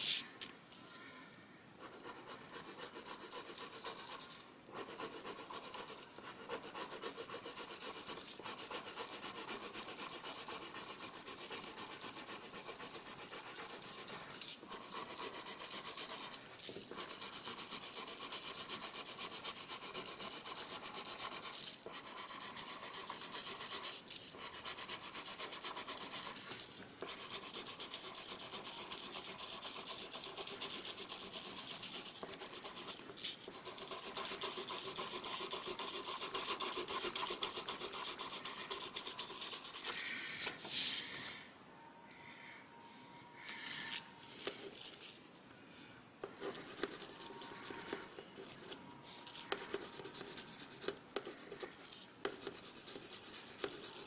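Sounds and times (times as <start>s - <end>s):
colored pencil scratching on paper: 1.8s - 41.4s, 46.2s - 54.0s.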